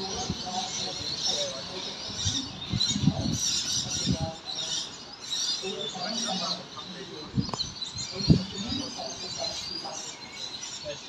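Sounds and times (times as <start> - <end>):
birds chirping and twittering: 0.0 - 11.0.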